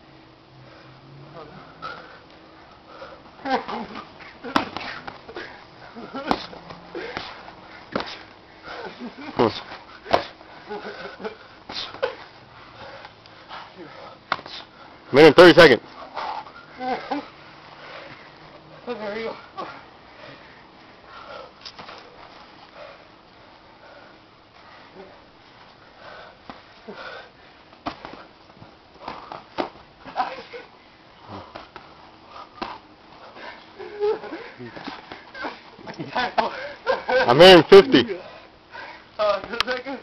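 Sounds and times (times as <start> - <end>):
breathing: 0.6 - 2.3, 2.9 - 3.3, 12.6 - 15.0, 17.7 - 18.4, 19.6 - 21.6, 22.6 - 25.2, 25.8 - 28.2, 33.2 - 33.7, 38.2 - 39.2
hard breathing and sniffing: 1.6 - 15.1
boxing gloves punching: 3.5 - 8.9, 10.0 - 11.0, 27.8 - 28.3, 29.0 - 30.4, 32.6 - 32.9.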